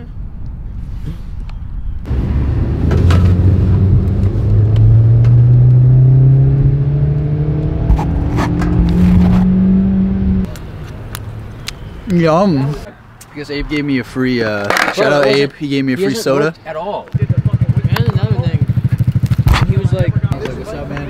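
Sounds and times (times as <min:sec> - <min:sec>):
road noise: 0:00.0 - 0:21.0
car engine accelerating: 0:02.1 - 0:10.6.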